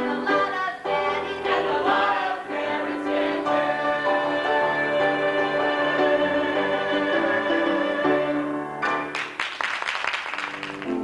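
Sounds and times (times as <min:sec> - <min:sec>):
group of voices singing: 0:00.0 - 0:08.6
instrumental accompaniment: 0:00.0 - 0:09.5, 0:10.4 - 0:11.0.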